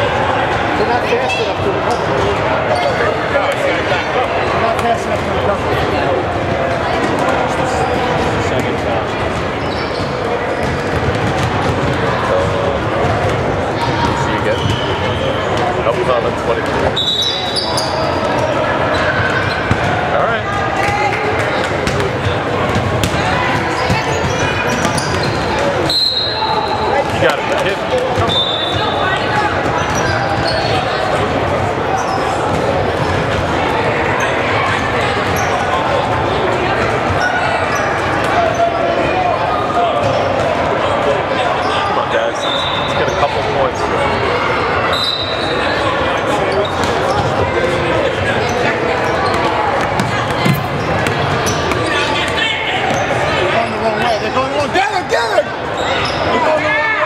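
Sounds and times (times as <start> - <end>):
crowd chatter: 0.0 - 57.0
basketball bouncing on court: 9.2 - 14.9, 19.3 - 25.7, 49.2 - 53.2
shoe squeaks: 9.6 - 11.0, 14.4 - 15.6, 16.9 - 19.8, 23.6 - 26.9, 28.2 - 31.0, 41.6 - 43.3, 44.9 - 47.3, 48.4 - 54.7, 55.7 - 56.5.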